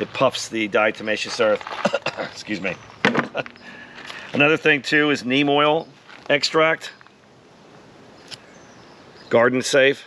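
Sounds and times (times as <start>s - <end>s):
quiet outdoor background noise: 0.0s - 10.0s.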